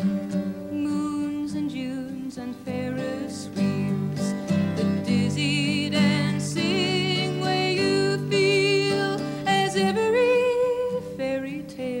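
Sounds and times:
acoustic guitar: 0.0 - 12.0
woman singing folk song: 0.0 - 12.0.

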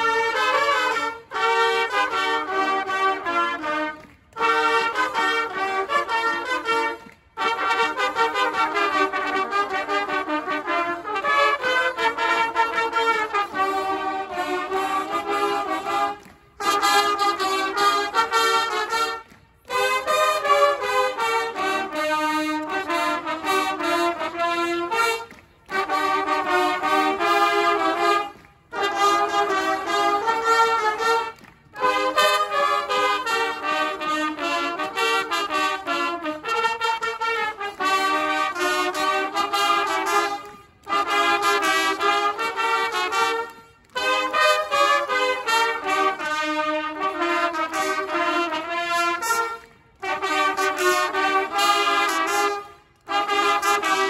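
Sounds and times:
trumpets playing in harmony: 0.0 - 54.0.

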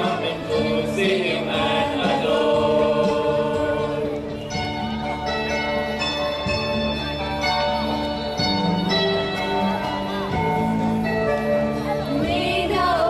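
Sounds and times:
mixed choir singing a carol: 0.0 - 4.8, 11.9 - 13.0.

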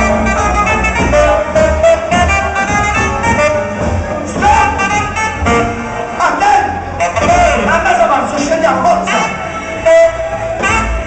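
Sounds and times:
band playing festival music: 0.0 - 11.0
bass line: 0.0 - 11.0
brass and saxophone: 0.0 - 11.0.

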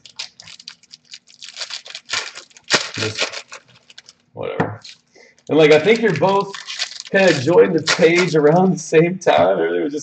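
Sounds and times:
foil wrapper crinkling: 0.0 - 8.6.

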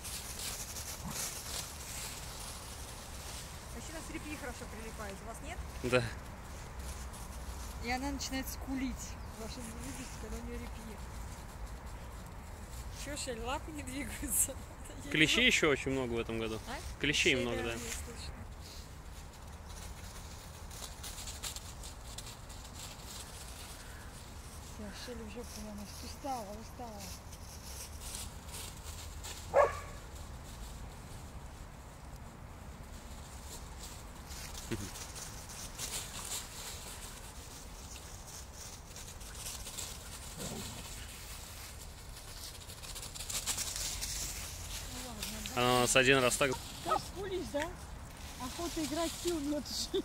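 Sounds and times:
dogs running through dry leaves: 0.0 - 50.0.

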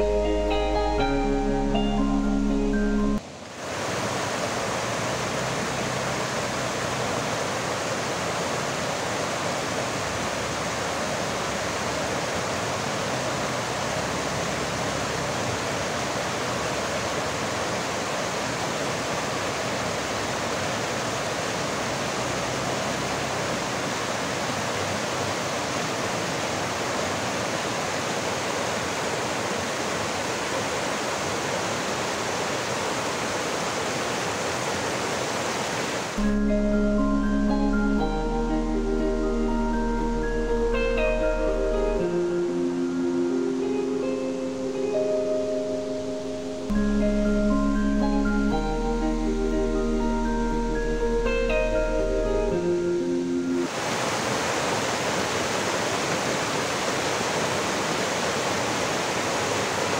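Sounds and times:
stream rushing over boulders: 3.2 - 36.2, 53.1 - 59.9.

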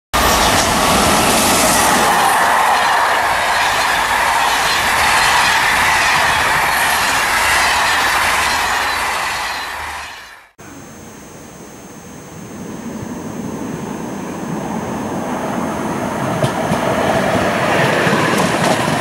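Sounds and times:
train wheels rolling on rail: 0.2 - 10.6, 12.8 - 19.0.

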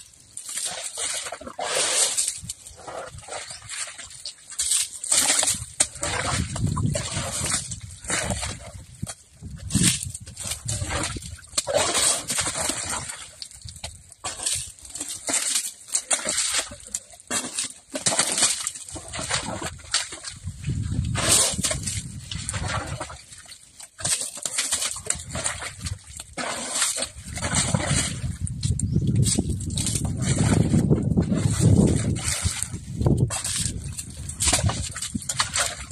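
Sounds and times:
elephant scuffing wet mud: 0.1 - 35.9
elephant flinging mud: 24.0 - 28.4.

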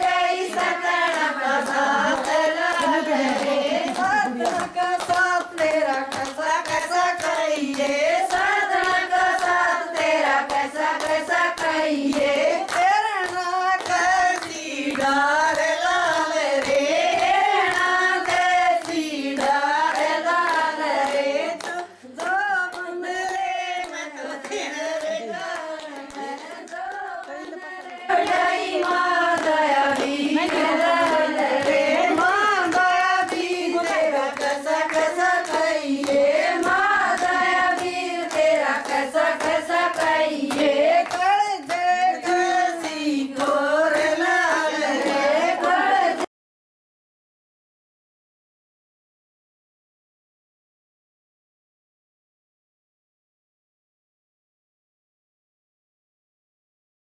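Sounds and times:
hand claps: 0.0 - 46.3
women singing folk song: 0.0 - 46.3.

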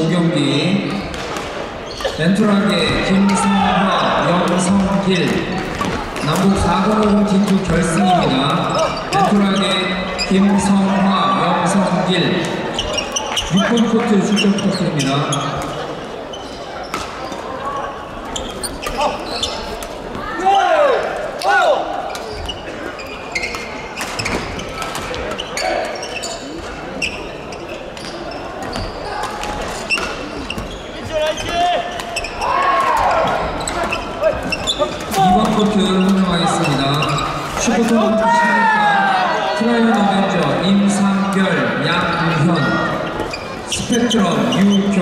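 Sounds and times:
court shoes squeaking: 0.0 - 20.4, 21.4 - 38.7, 39.3 - 45.0
players chattering: 0.0 - 45.0.

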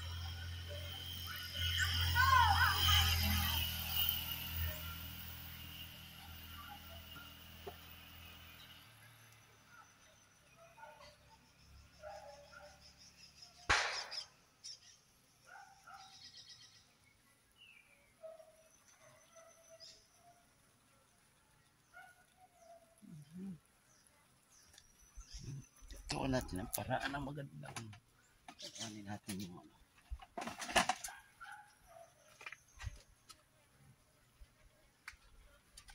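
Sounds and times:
bird chirps and calls: 10.3 - 15.1, 28.5 - 29.2
sharp click: 13.7 - 14.3.

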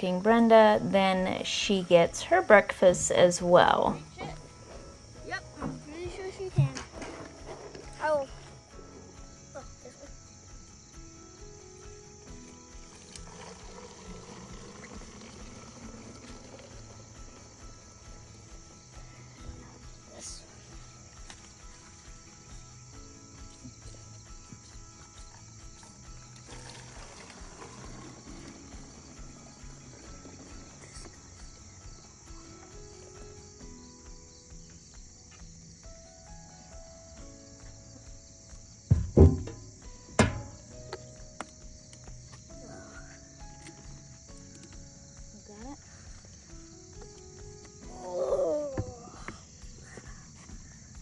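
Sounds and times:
insects droning: 0.0 - 51.0
soft instrumental music: 0.0 - 51.0
loud thumps: 38.9 - 41.0.

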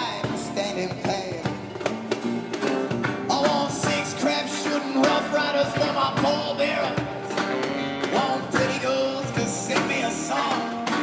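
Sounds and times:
man singing into a microphone: 0.0 - 1.7, 3.3 - 7.3, 8.0 - 11.0
acoustic guitar strumming: 0.0 - 11.0.

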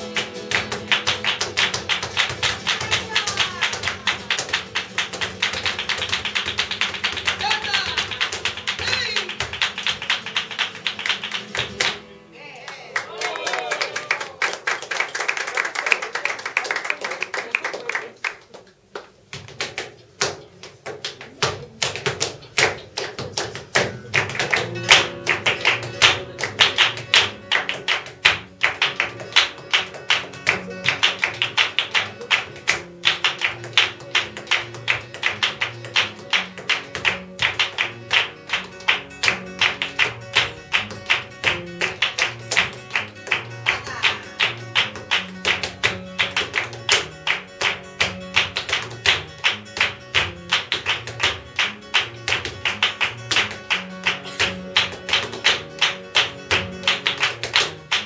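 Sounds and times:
rhythmic hand-clapping: 0.0 - 12.2, 13.0 - 58.0
flamenco guitar: 0.0 - 58.0.

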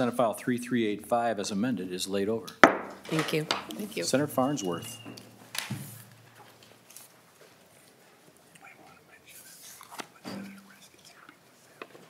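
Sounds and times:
small handling noises: 4.6 - 12.0
faint whispered talk: 8.5 - 11.8.

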